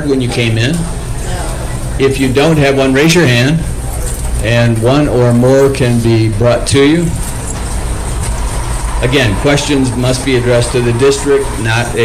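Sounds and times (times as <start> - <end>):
low rumble: 7.2 - 12.0.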